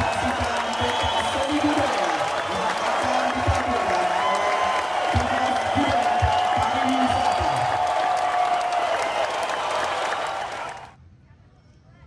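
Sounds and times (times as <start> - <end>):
audience applause: 0.0 - 11.0.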